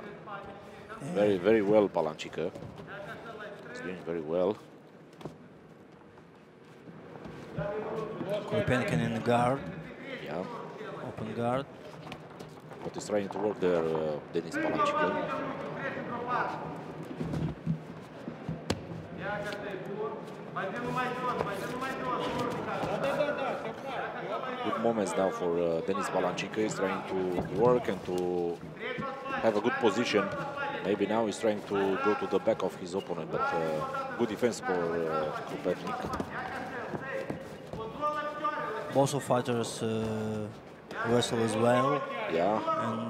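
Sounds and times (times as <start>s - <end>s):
arena background noise: 0.0s - 43.0s
man speaking: 0.6s - 2.5s, 12.9s - 16.7s, 20.7s - 43.0s.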